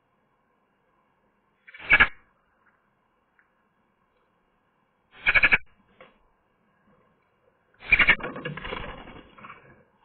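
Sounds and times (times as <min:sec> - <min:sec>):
magpie harsh rattling call: 0:01.6 - 0:02.2, 0:05.2 - 0:05.7, 0:07.8 - 0:08.2.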